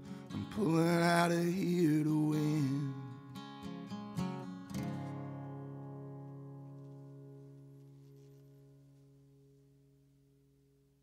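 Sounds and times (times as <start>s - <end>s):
acoustic guitar strumming: 0.0s - 10.8s.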